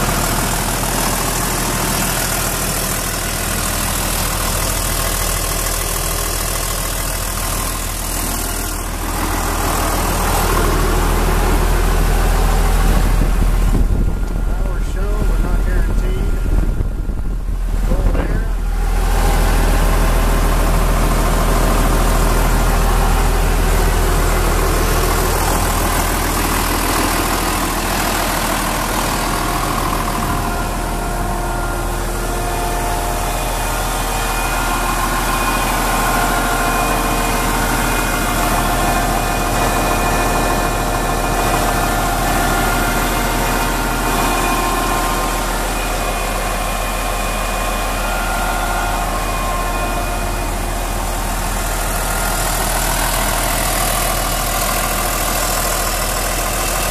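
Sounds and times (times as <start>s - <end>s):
tractor diesel engine idling: 0.0s - 56.9s.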